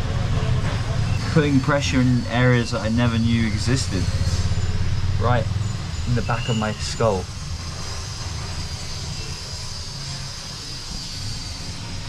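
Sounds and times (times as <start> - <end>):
faint high whine: 1.1 - 12.0.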